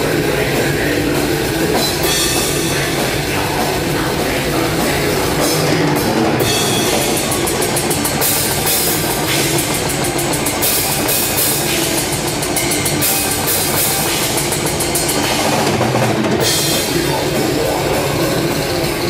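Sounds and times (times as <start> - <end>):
drum kit: 0.0 - 19.0
heavy metal band playing: 0.0 - 19.0
rapid cymbal strokes: 0.0 - 19.0.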